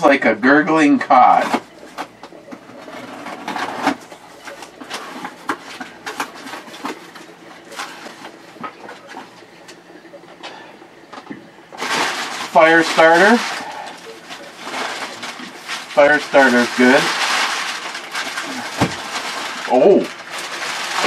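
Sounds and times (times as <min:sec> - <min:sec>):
packing paper rustling: 0:01.3 - 0:09.4, 0:11.7 - 0:21.0
items knocking on wooden workbench: 0:18.8 - 0:19.0.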